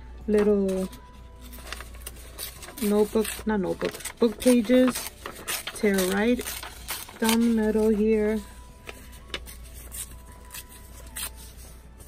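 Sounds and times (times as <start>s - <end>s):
paper ripping: 1.4s - 11.6s.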